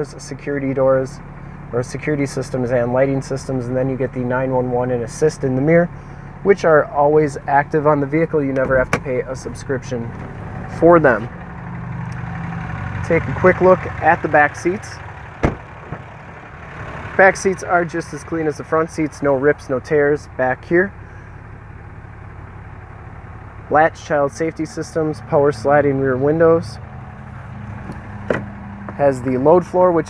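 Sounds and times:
engine idling hum: 0:00.0 - 0:30.0
seat cushion click: 0:27.8 - 0:28.6.

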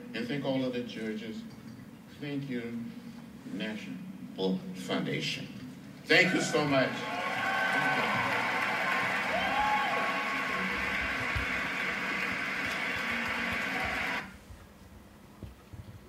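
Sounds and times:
audience applause: 0:06.2 - 0:14.3.

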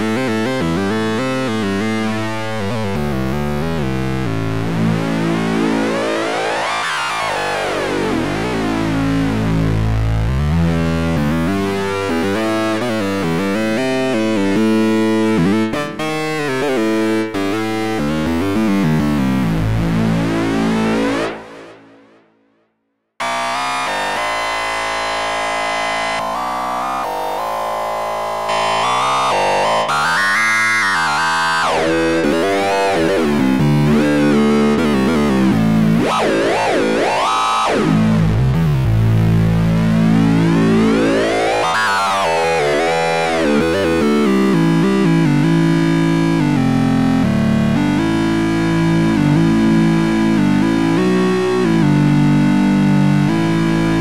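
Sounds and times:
synthesizer sweeping overtones: 0:04.2 - 0:09.5, 0:23.2 - 0:44.3.

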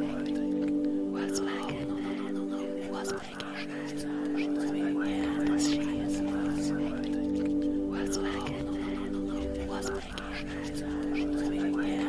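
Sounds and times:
ambient drone of low tones: 0:00.0 - 0:12.0
soft whispering voices: 0:00.0 - 0:12.0.

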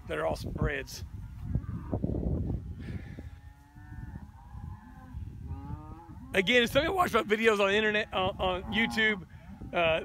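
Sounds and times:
cow mooing: 0:03.3 - 0:06.6, 0:08.2 - 0:10.0.

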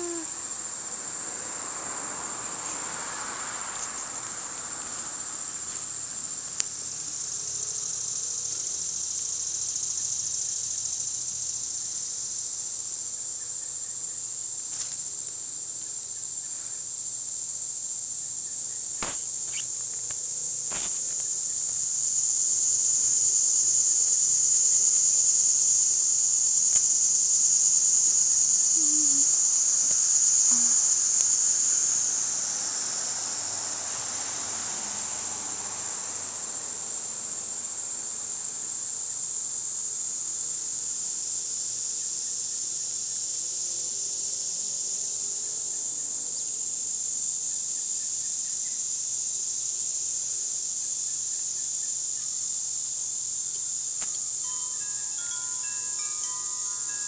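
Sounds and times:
insects buzzing: 0:00.0 - 0:57.0.

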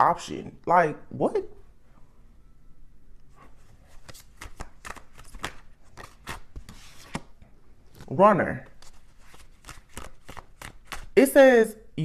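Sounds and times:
cards being shuffled: 0:03.6 - 0:11.2.

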